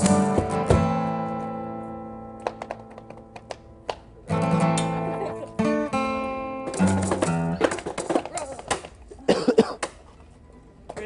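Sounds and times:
person coughing: 0:09.2 - 0:09.9.

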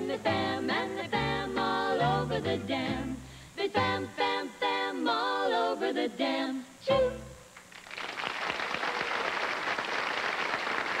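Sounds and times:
audience applauding: 0:07.7 - 0:11.0.

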